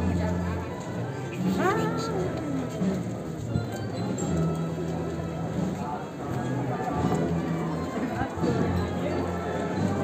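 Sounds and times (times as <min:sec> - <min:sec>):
crowd voices: 0:00.0 - 0:10.0
music: 0:00.0 - 0:10.0.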